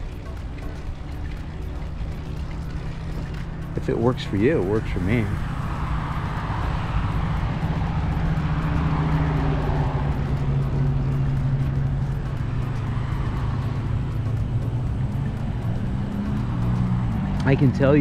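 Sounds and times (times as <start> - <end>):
car traffic hum: 0.0 - 18.0.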